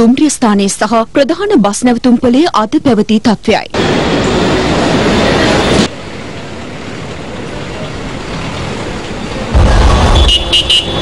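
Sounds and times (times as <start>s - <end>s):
traffic background: 2.3s - 11.0s
bus engine rumbling: 3.6s - 11.0s.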